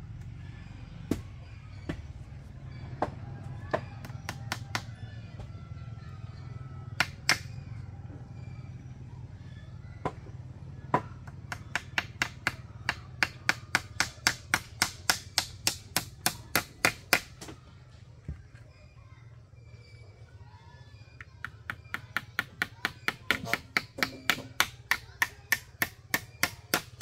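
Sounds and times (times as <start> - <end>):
hand tool knocking on wood: 21.4 - 27.0.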